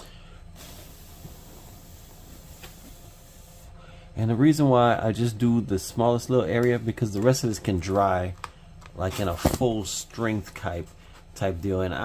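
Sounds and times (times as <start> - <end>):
spray hissing: 0.6 - 3.7.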